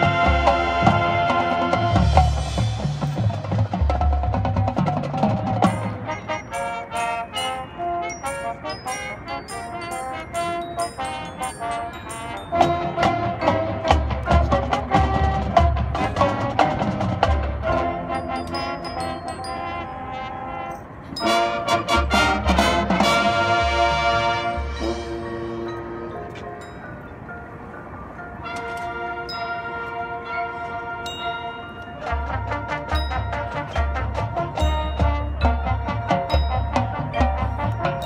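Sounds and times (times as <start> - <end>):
low brass: 0.0 - 3.8, 5.1 - 26.6, 28.4 - 38.0
marching band playing: 0.0 - 26.7, 28.3 - 38.0
mallet percussion quick notes: 0.1 - 20.1, 31.1 - 38.0.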